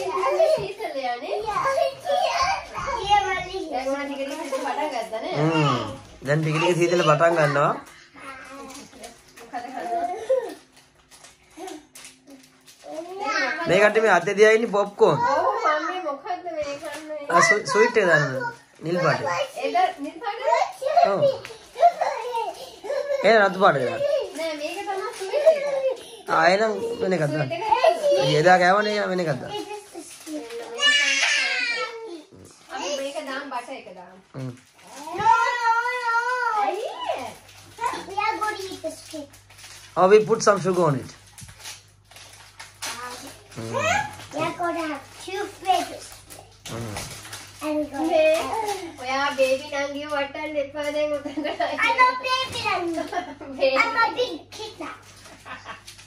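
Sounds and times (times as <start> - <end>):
child whining cry: 5.3 - 6.0, 20.4 - 24.4, 30.7 - 32.2.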